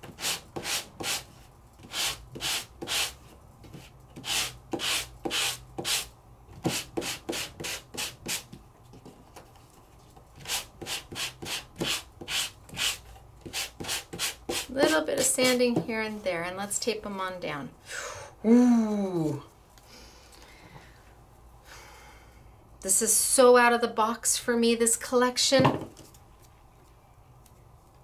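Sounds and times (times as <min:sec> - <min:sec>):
sanding block on cardstock: 0:00.0 - 0:08.5, 0:10.4 - 0:15.6.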